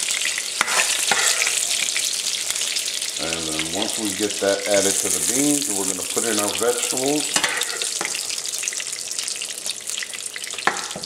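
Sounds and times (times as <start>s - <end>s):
fat sizzling in a pan: 0.0s - 11.0s.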